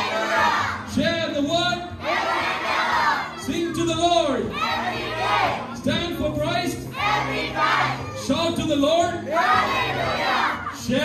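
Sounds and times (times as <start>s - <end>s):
children chanting in unison: 0.0s - 0.8s, 2.0s - 3.4s, 4.5s - 5.6s, 6.9s - 8.2s, 9.4s - 10.7s.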